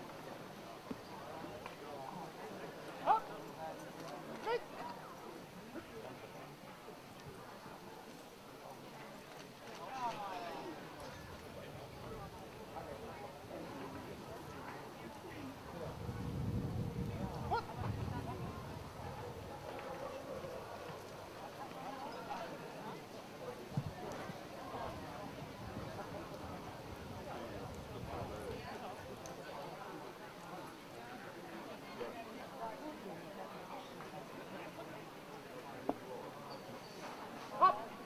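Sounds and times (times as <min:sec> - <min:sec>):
low uneven rumble: 0:10.9 - 0:21.8, 0:23.8 - 0:29.3.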